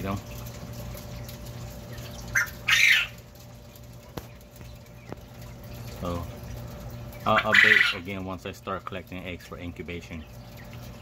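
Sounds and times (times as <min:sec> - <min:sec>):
quail calling: 0:02.2 - 0:03.2, 0:07.2 - 0:08.1.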